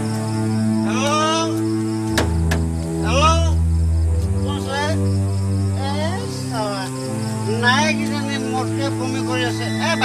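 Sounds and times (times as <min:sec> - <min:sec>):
low drone chords: 0:00.0 - 0:10.0
sweeping warbling synth tones: 0:08.8 - 0:10.0.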